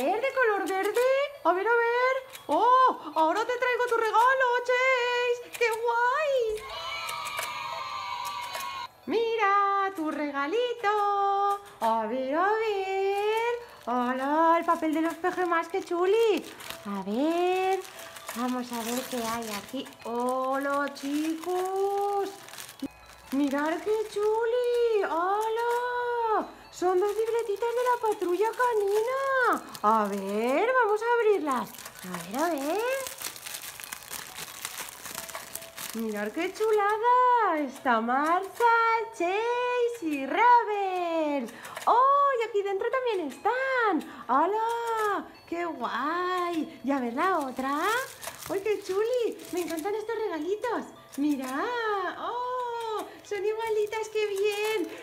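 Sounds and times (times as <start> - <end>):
cellophane wrapper crinkling: 0.0 - 8.9, 9.8 - 43.8, 44.5 - 55.0.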